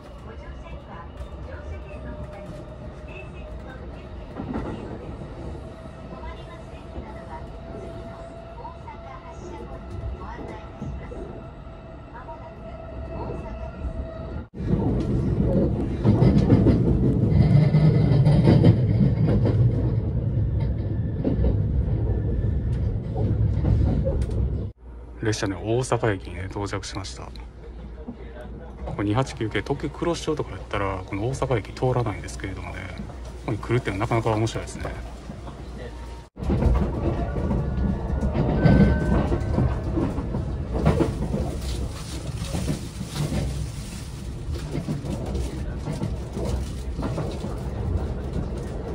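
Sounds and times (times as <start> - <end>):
train wheel and rail rumble: 0.0 - 48.9.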